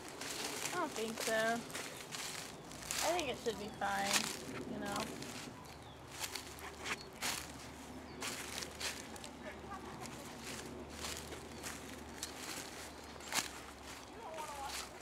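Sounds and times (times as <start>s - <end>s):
twigs snapping: 0.0s - 7.6s, 10.0s - 14.8s
footsteps crunching through leaves: 0.0s - 15.0s.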